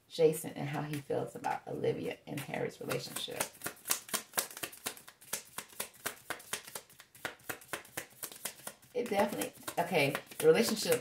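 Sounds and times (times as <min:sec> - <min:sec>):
cards being shuffled: 0:02.4 - 0:11.0.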